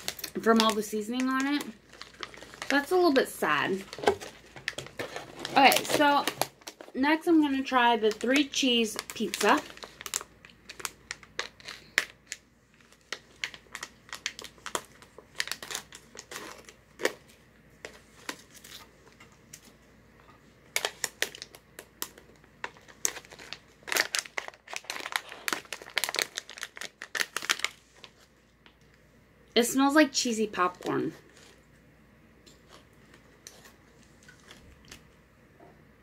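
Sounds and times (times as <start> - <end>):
plastic pouch crinkling: 0.0 - 17.3, 20.7 - 28.8, 30.5 - 31.6.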